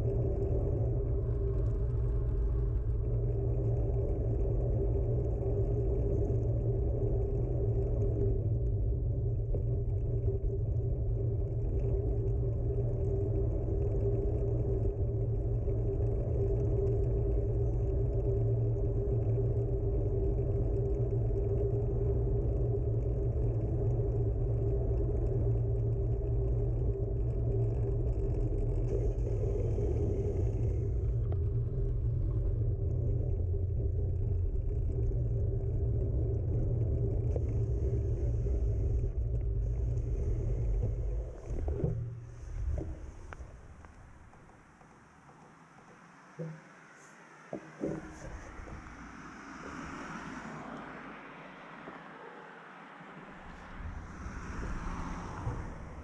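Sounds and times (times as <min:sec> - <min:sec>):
bicycle tyre rumble on asphalt: 0:00.0 - 0:56.0
knocks: 0:47.5 - 0:48.8.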